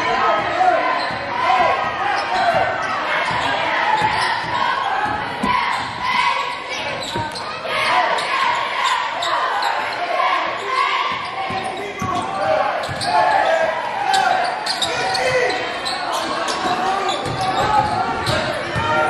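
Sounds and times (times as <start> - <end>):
voices echoing in a gym: 0.0 - 19.0.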